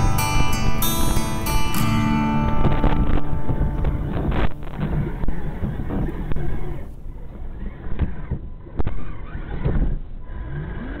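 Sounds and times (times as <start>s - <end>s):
electric motor and gears whine: 2.0s - 11.0s.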